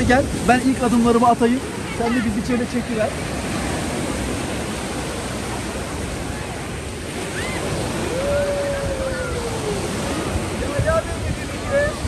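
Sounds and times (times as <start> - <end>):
waves washing up a beach: 0.0 - 12.0
wind on microphone: 0.0 - 12.0.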